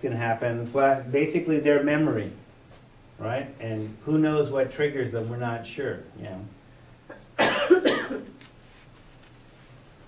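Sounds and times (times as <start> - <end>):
person coughing: 7.1 - 8.4.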